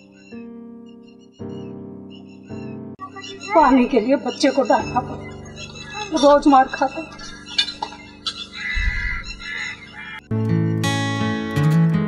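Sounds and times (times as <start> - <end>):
faint background music: 1.3 - 10.1
chicken clucking: 4.4 - 10.2.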